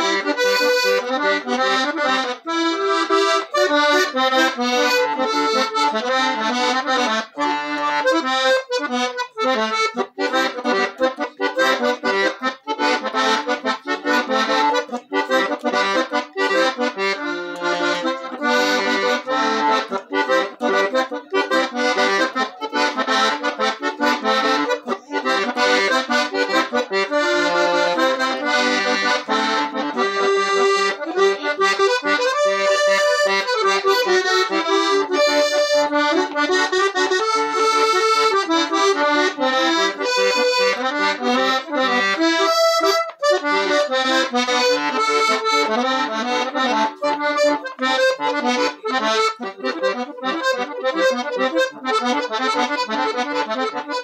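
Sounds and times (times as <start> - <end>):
accordion melody: 0.0 - 54.0.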